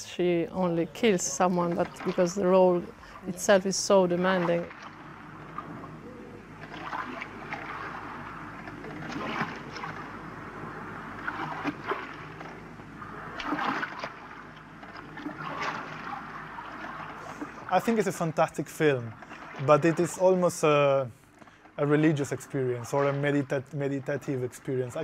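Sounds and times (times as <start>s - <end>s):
water lapping around boat: 0.2s - 25.0s.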